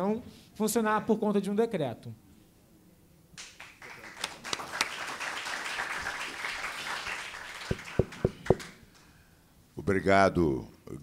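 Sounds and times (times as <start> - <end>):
audience applauding: 3.4 - 8.8
sharp knocks: 7.7 - 8.7.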